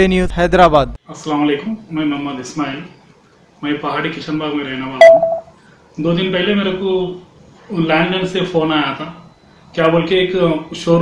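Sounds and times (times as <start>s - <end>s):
short electronic beep: 5.0s - 5.5s.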